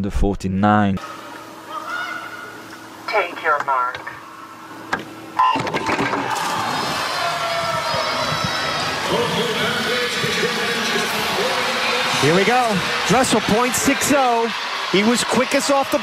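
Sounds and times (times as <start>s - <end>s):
crowd noise with shouting: 1.0s - 2.7s, 5.9s - 16.0s.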